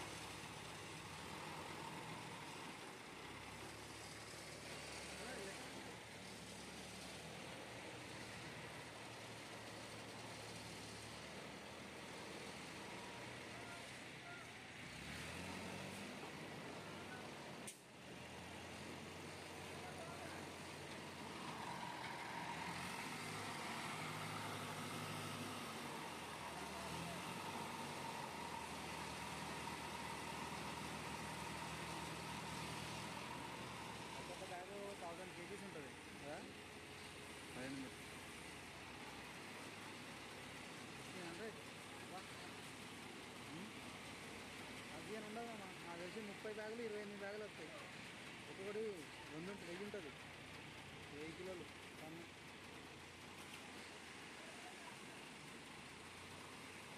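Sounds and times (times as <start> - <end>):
diesel crane engine running: 0.0 - 56.9.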